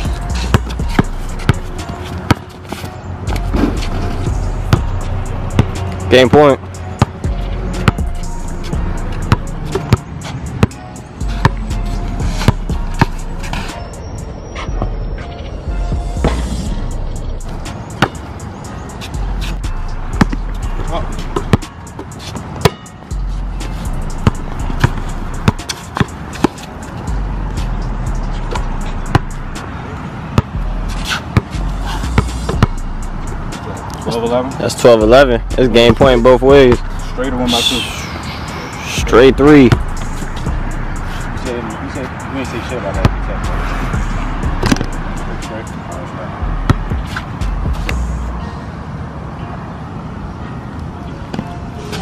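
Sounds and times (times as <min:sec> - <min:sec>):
music with deep bass line: 0:00.0 - 0:02.5, 0:03.2 - 0:18.1, 0:19.1 - 0:21.7, 0:23.1 - 0:25.8, 0:27.0 - 0:29.6, 0:30.6 - 0:34.1, 0:34.9 - 0:38.0, 0:38.8 - 0:42.0, 0:42.9 - 0:45.6, 0:46.4 - 0:48.4
basketball bouncing on asphalt: 0:00.0 - 0:13.8, 0:17.6 - 0:18.4, 0:19.0 - 0:27.6, 0:28.4 - 0:29.3, 0:30.4 - 0:32.8, 0:39.6 - 0:40.7, 0:43.0 - 0:45.0, 0:46.6 - 0:48.0.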